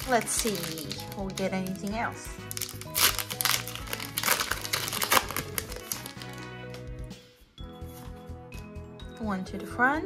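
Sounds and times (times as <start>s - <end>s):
foil wrapper crinkling: 0.0s - 6.9s
background music: 0.0s - 10.0s.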